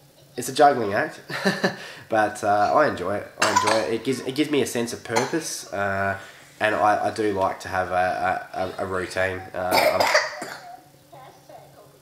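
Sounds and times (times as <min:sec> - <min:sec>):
person coughing: 0:09.6 - 0:10.8.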